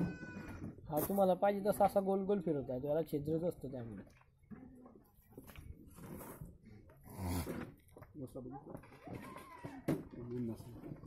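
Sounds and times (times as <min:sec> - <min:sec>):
goat bleating: 0:00.0 - 0:00.6.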